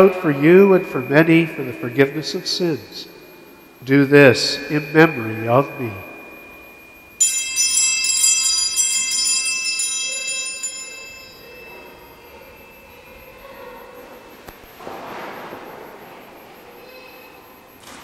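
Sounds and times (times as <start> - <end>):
small altar bells ringing: 0.0 - 14.8.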